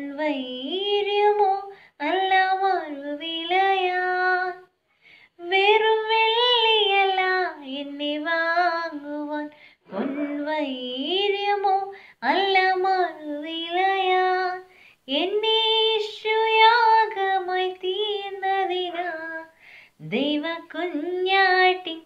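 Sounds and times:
woman singing a hymn unaccompanied: 0:00.0 - 0:04.7, 0:05.4 - 0:22.0.

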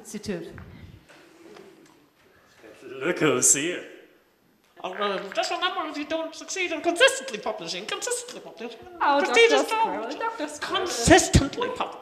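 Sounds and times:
man speaking: 0:04.8 - 0:12.0.

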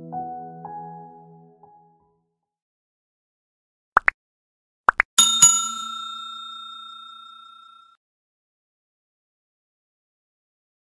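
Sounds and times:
bell ringing: 0:05.2 - 0:08.0.

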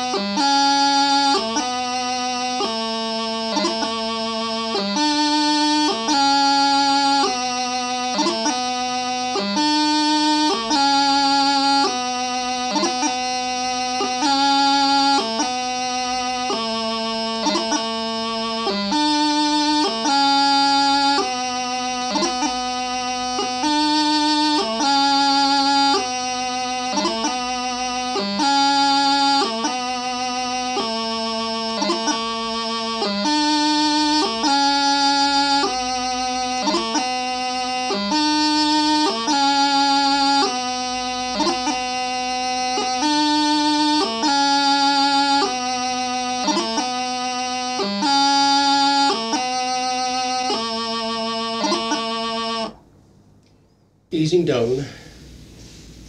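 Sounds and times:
practice chanter playing: 0:00.0 - 0:56.0.

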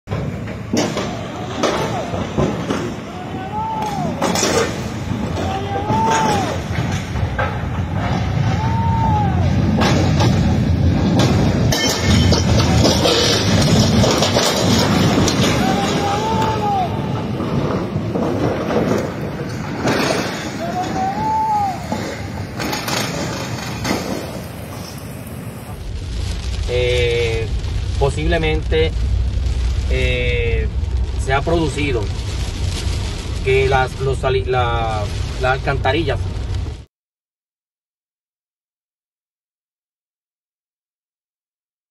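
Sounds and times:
heavy rain: 0:00.1 - 0:36.9
floodwater rushing: 0:08.6 - 0:28.2.

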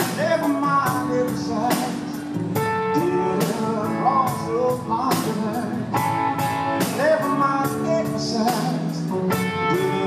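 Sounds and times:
male lead vocal: 0:00.0 - 0:06.2, 0:06.8 - 0:10.0
bass guitar: 0:00.0 - 0:10.0
blues rock band playing: 0:00.0 - 0:10.0
electric guitar: 0:00.0 - 0:10.0.

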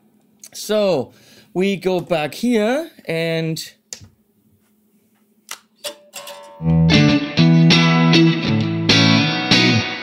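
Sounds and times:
loud electric guitar chords: 0:06.5 - 0:10.0.

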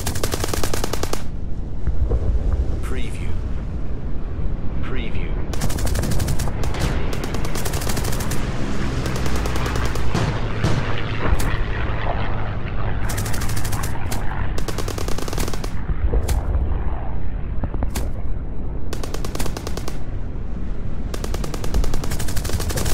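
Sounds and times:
automatic gunfire bursts: 0:00.0 - 0:01.3, 0:05.6 - 0:10.4, 0:13.1 - 0:15.8, 0:18.9 - 0:20.1, 0:21.2 - 0:22.9
low rumble: 0:01.2 - 0:22.9.

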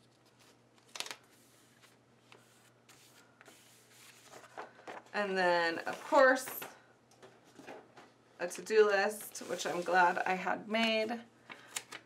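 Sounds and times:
sticker sheet rustling on paper: 0:05.7 - 0:06.6, 0:09.2 - 0:10.3.

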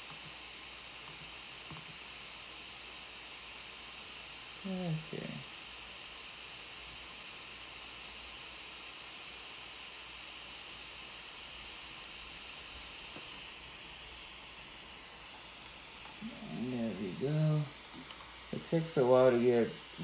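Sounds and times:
small cooling fan whirring: 0:00.0 - 0:20.0.

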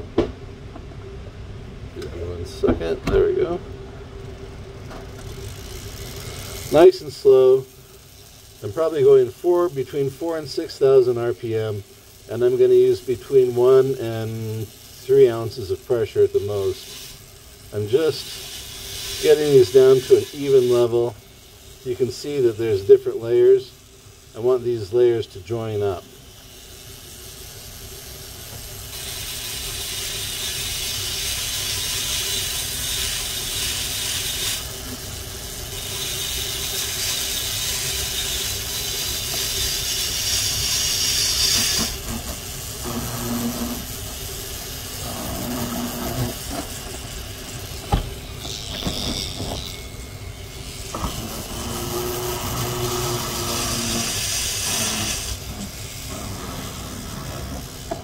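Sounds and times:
rotary tool motor hum: 0:04.2 - 0:58.0
high hissing grinding of stone: 0:05.1 - 0:58.0.

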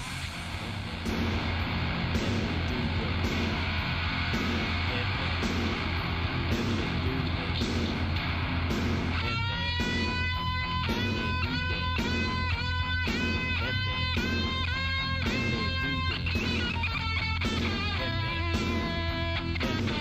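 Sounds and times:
distorted electric guitar and bass: 0:00.0 - 0:20.0
lead guitar bending notes: 0:00.0 - 0:20.0.

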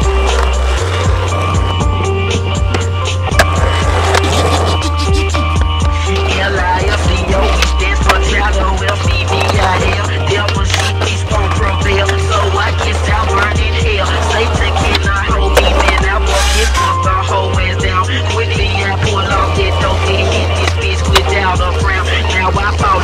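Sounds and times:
music with deep bass line: 0:00.0 - 0:23.0
skateboard clacking: 0:00.0 - 0:23.0
skateboard wheels rolling on concrete: 0:00.0 - 0:23.0.

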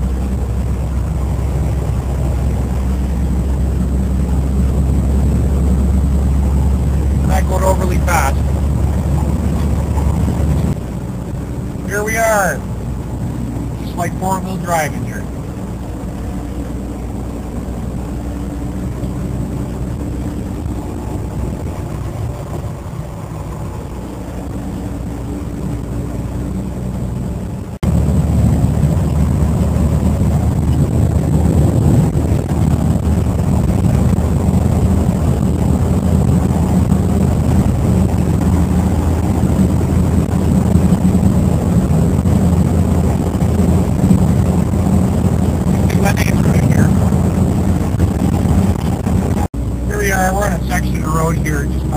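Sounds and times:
road noise: 0:00.0 - 0:51.9
truck engine running: 0:00.0 - 0:51.9.

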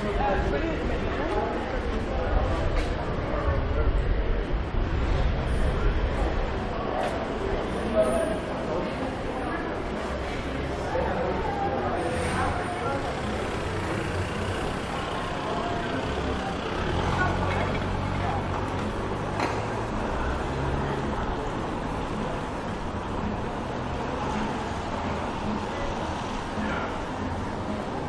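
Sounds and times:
people talking: 0:00.0 - 0:28.0.

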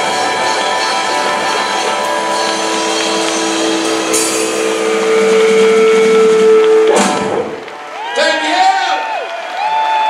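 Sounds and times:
electric guitar sustained note: 0:00.0 - 0:07.8.

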